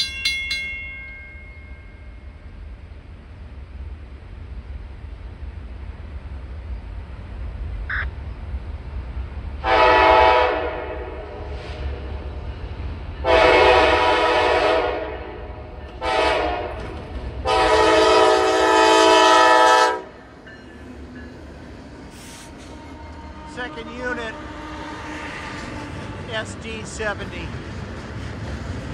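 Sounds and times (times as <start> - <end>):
locomotive rumble: 0.0 - 28.9
locomotive air horn blasts: 9.6 - 12.2, 13.2 - 16.8, 17.4 - 20.2.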